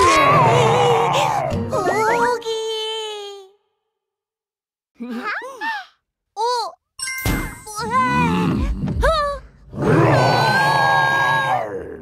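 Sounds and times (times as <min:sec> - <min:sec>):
cartoon dinosaur roar: 0:09.7 - 0:12.0.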